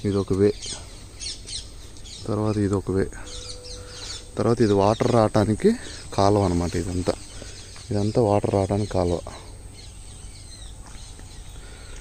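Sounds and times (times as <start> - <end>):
bird calling in high notes: 0.6 - 8.2
person speaking: 2.2 - 7.3.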